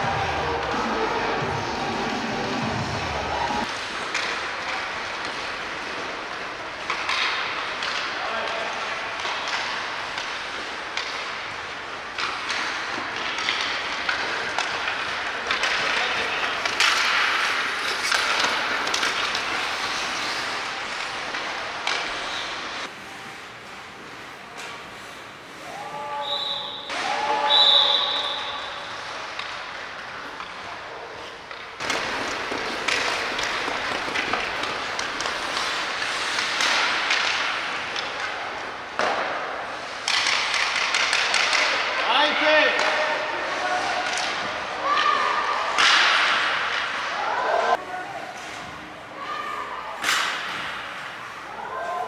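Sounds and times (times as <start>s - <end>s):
skate blades scraping ice: 3.4s - 25.9s, 28.0s - 52.0s
hockey sticks and puck clacking: 3.4s - 52.0s.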